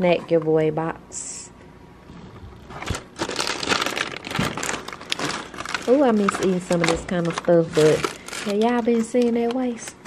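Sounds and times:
plastic bags crinkling: 2.5s - 10.0s.

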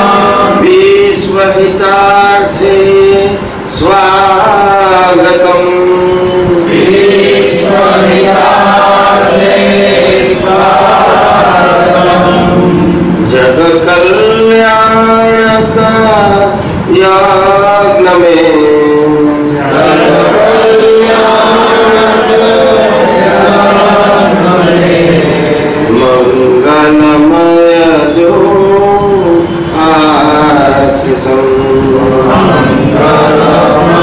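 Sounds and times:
devotional mantra chanting: 0.0s - 34.0s.

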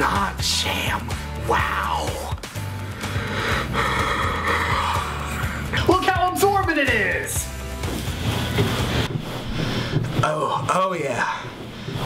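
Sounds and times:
towel scrubbing on tabletop: 7.0s - 12.0s.

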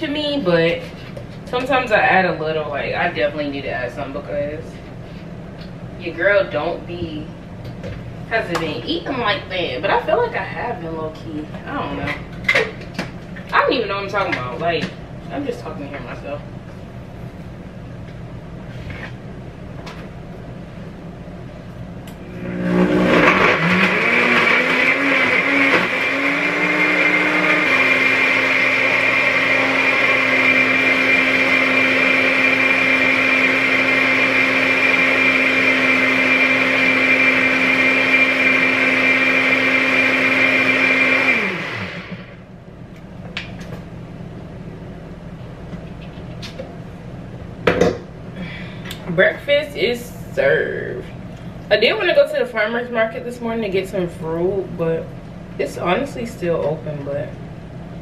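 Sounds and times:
blender motor running: 22.2s - 42.4s.

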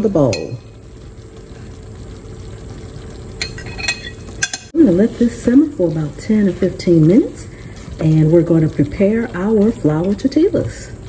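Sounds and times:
gravy simmering and bubbling: 0.0s - 11.0s
liquid pouring: 0.5s - 11.0s
glass bowl clinking: 3.4s - 4.7s.

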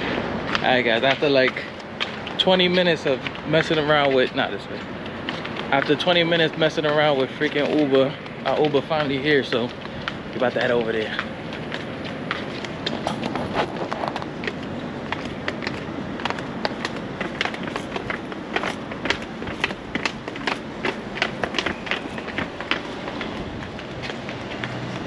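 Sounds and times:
footsteps on pavement: 0.0s - 25.0s
steady background hiss: 0.0s - 25.0s.

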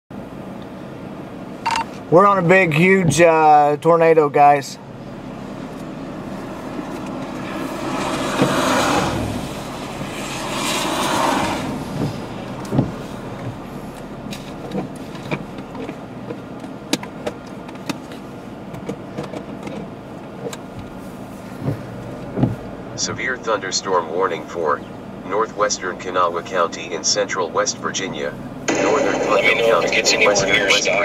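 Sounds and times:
outdoor rushing rumble: 0.1s - 31.0s.

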